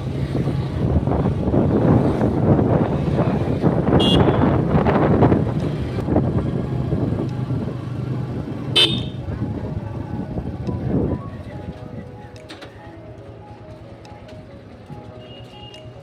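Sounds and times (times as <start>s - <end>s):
moving vehicle rumble: 0.0s - 16.0s
background music: 7.2s - 16.0s.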